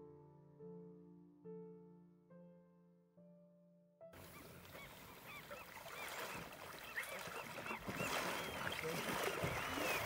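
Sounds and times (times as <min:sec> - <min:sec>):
flock of birds calling: 0:04.2 - 0:10.0.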